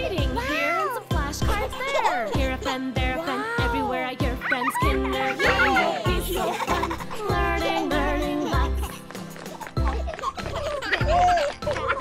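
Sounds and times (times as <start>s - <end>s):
person singing nursery rhyme: 0.0s - 9.2s.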